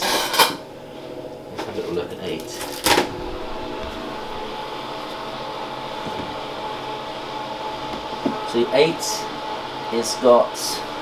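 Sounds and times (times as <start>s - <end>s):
electric appliances humming: 0.0s - 11.0s
motor-driven fan: 0.0s - 11.0s
faint steady whine: 0.6s - 11.0s.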